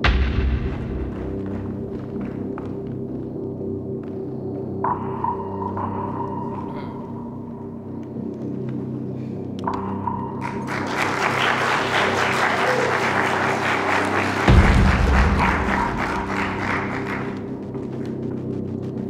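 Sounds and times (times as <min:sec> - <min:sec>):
background music: 0:00.0 - 0:19.0
crowd applauding: 0:00.6 - 0:02.8, 0:10.3 - 0:18.5.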